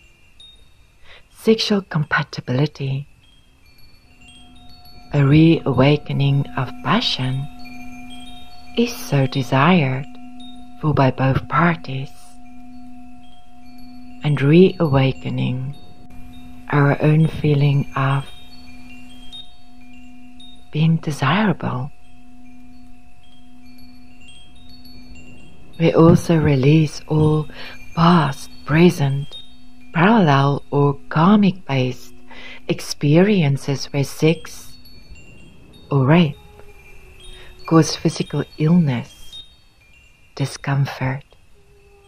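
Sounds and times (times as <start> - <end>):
faint chimes ringing: 0.0 - 42.0
steady low drone: 4.6 - 39.2.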